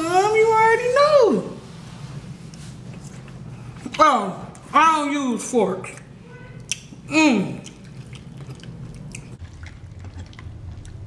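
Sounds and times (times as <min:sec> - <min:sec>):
steady low hum: 0:00.0 - 0:11.0
biting and chewing: 0:07.6 - 0:11.0.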